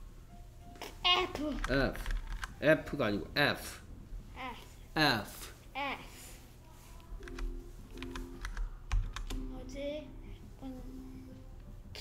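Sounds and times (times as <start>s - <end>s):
computer keyboard keystrokes: 1.6s - 2.5s, 7.2s - 9.4s.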